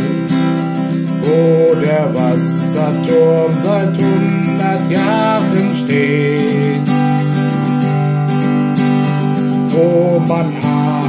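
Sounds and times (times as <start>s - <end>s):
man singing: 0.0s - 7.6s, 9.4s - 11.0s
acoustic guitar strumming chords: 0.0s - 11.0s.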